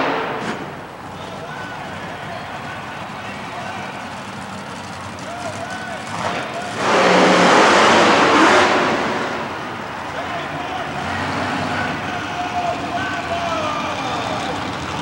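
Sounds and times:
monster truck engines running hard: 0.0 - 15.0.

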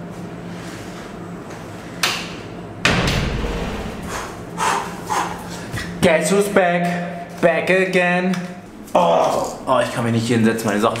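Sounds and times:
door shutting with a thud: 2.8 - 4.5.

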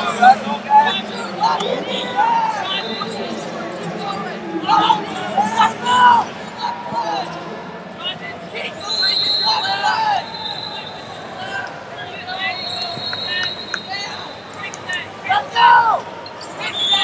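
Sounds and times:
shouting voices: 0.0 - 7.4, 8.0 - 16.0.

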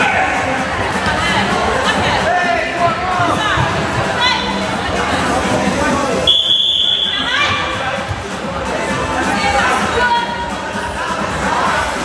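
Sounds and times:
crowd chatter: 0.0 - 12.0
music with singing: 0.0 - 12.0.

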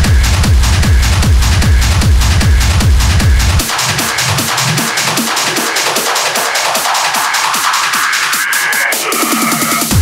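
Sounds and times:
fast percussion ticks: 0.0 - 10.0
thinned techno music: 0.0 - 10.0.

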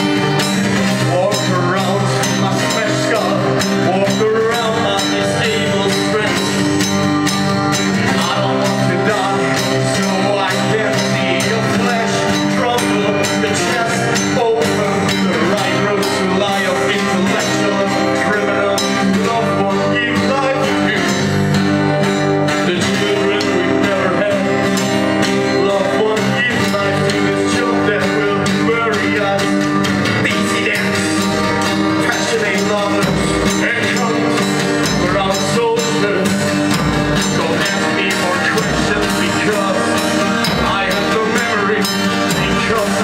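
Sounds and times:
drum and tambourine percussion: 0.0 - 25.8, 29.8 - 43.0
strummed acoustic guitar: 0.0 - 43.0
man singing into a microphone: 0.1 - 43.0.

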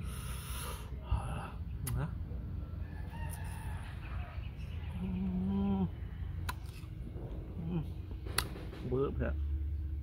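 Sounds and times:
farm animals calling: 2.6 - 6.3.

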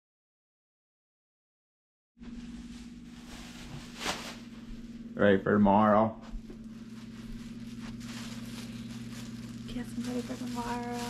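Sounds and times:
low electrical hum: 2.2 - 11.0.

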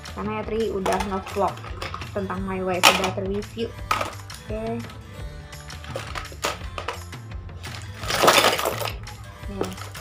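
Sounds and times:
background music: 0.0 - 10.0
small items clattering in plastic basket: 0.8 - 2.2, 5.9 - 10.0.

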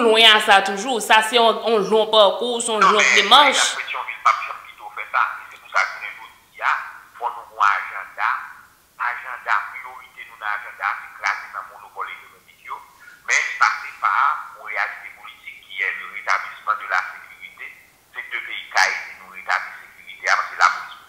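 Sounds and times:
tinny voice through phone speaker: 0.0 - 21.0.

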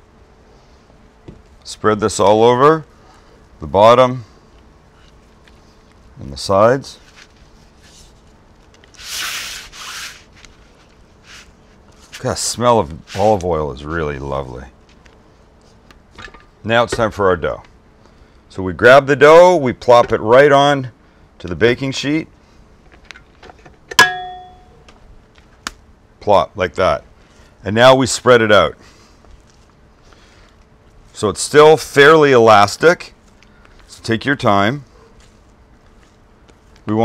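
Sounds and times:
hand rubbing metal baking sheet: 9.0 - 13.5
metal bowl clang ringing: 23.9 - 24.8.

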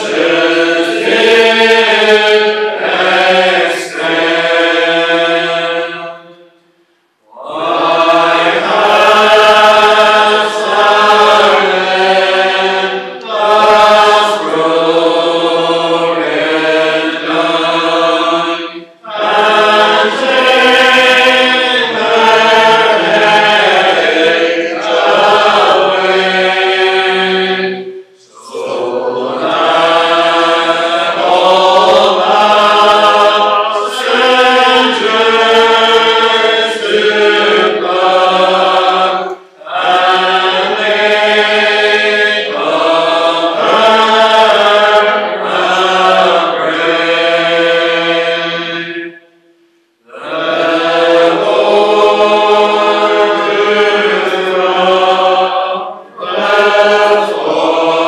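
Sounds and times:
congregation singing unaccompanied: 0.0 - 58.0.

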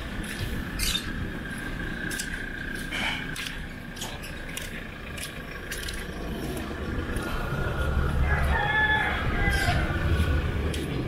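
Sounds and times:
rooster crowing: 8.1 - 10.2.

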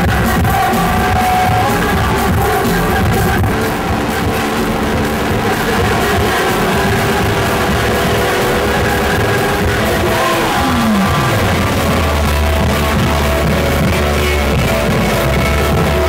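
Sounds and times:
rock band playing: 0.0 - 16.0.

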